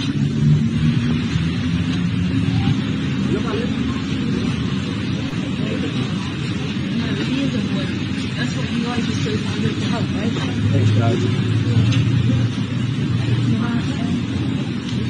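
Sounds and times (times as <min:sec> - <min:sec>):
indistinct voices: 0:00.0 - 0:15.0
low street rumble: 0:00.0 - 0:15.0.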